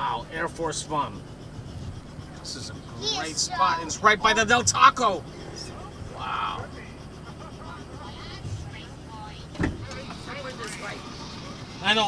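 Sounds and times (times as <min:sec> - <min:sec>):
helicopter engine and rotor: 0:00.0 - 0:12.0.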